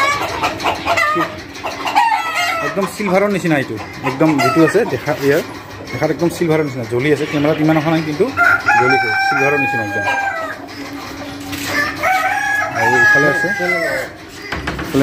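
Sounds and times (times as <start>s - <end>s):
chickens clucking: 0.0s - 15.0s
rooster crowing: 8.4s - 10.6s, 11.7s - 14.2s.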